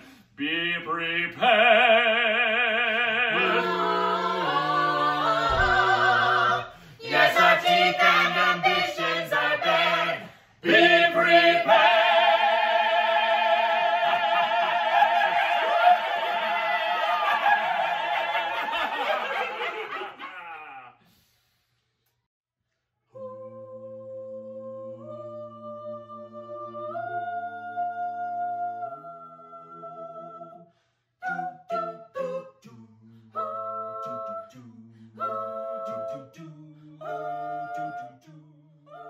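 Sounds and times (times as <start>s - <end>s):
people laughing: 14.2s - 20.9s.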